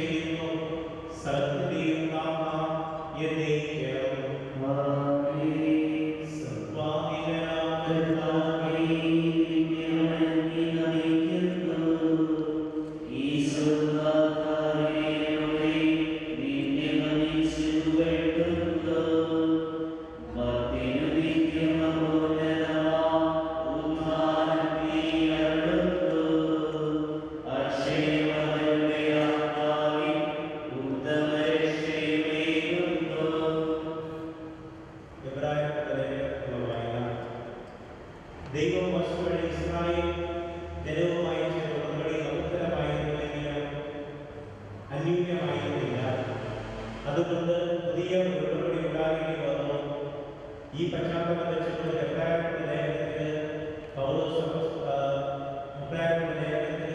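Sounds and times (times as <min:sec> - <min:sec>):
slow liturgical chant: 0:00.0 - 0:56.9.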